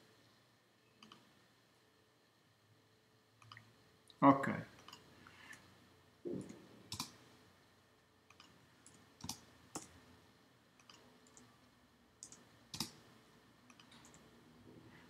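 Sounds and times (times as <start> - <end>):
keyboard and mouse clicks: 1.0 - 1.3, 3.4 - 3.7, 4.8 - 5.6, 6.3 - 7.2, 8.3 - 10.0, 10.8 - 11.5, 12.2 - 13.0, 13.7 - 14.3.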